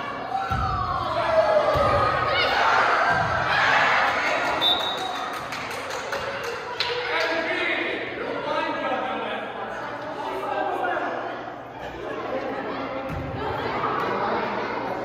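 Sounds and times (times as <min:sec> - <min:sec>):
kids shouting: 0:00.0 - 0:05.4
volleyball being hit: 0:00.4 - 0:02.3.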